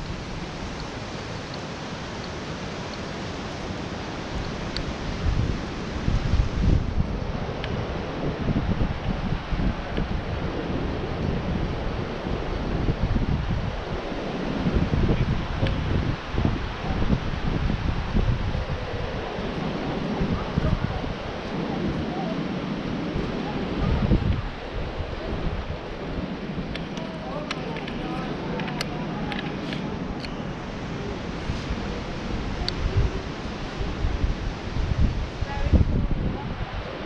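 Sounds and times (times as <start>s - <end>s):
breaking surf: 0.0s - 37.0s
wind buffeting microphone: 0.0s - 37.0s.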